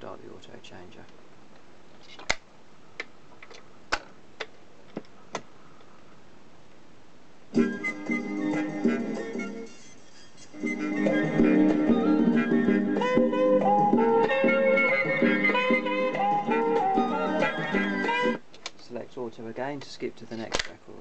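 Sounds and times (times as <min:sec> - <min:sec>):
record playing music: 0:07.5 - 0:18.4.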